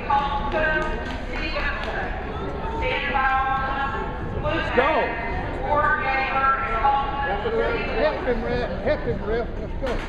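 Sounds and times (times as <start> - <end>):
crowd talking in echoing hall: 0.0 - 10.0.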